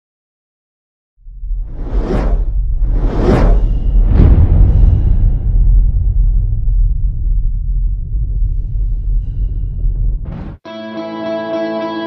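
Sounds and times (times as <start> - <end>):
deep bass rumble: 1.2 - 10.6
cinematic whooshes: 1.3 - 10.6.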